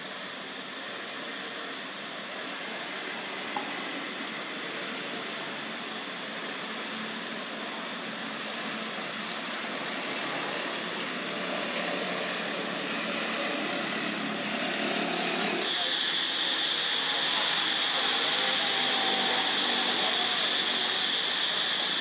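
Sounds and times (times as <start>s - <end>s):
high-pitched drone: 9.4s - 22.0s.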